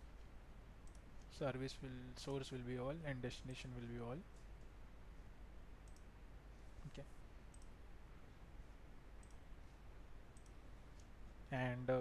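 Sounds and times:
low steady hum: 0.0 - 12.0
faint computer mouse clicks: 0.8 - 1.3, 5.8 - 6.1, 7.5 - 7.8, 9.2 - 9.4, 10.3 - 11.2.

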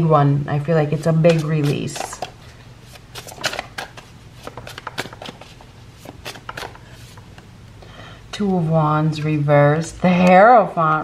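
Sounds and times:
cards being shuffled: 1.0 - 7.5.

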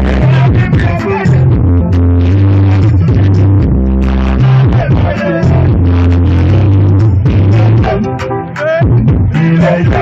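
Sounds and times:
electronic concert music: 0.0 - 10.0.

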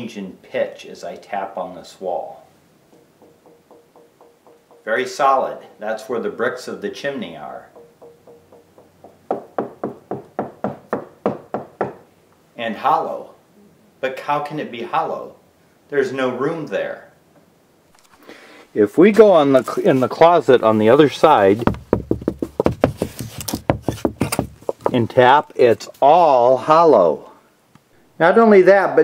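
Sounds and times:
knuckles knocking on wall: 2.9 - 4.9, 7.7 - 12.0, 21.6 - 25.0.

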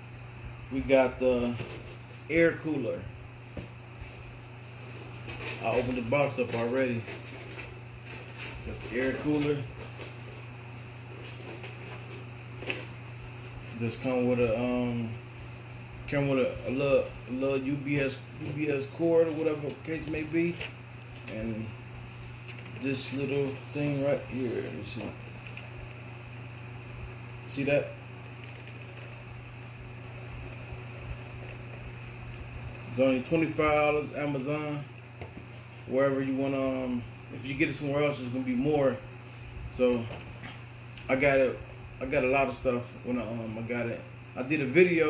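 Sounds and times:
low electrical hum: 0.0 - 45.0.

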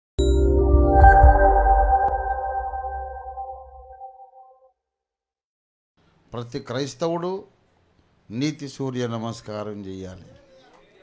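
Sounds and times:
logo music sting chord: 0.2 - 4.2.

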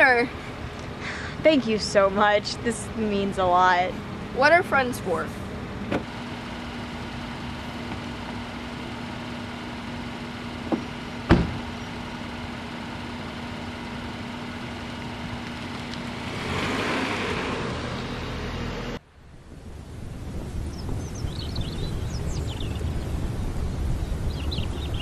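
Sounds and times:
car engine idling: 0.0 - 19.7
car pulling away: 5.1 - 25.0
car door slamming: 5.8 - 6.1, 10.6 - 11.8.

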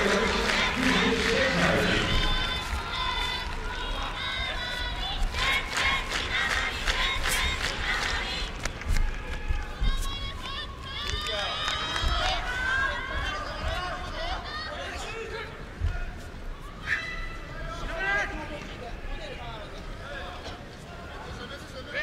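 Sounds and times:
crowd shouting in arena: 0.0 - 6.0.

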